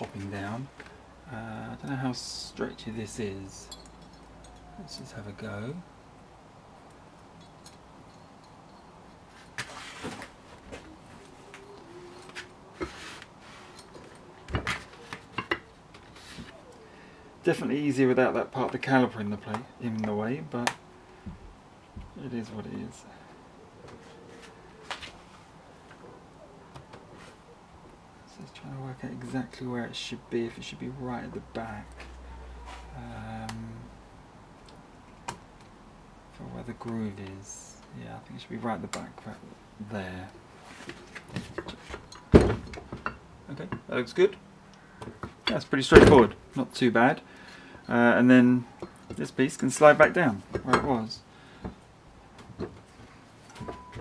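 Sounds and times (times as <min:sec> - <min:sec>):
light metal clicks and knocks: 0:03.6 - 0:04.7.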